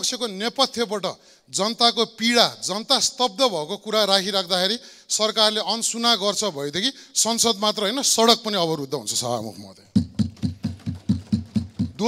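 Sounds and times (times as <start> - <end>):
rapid low thumps: 10.0 - 12.0.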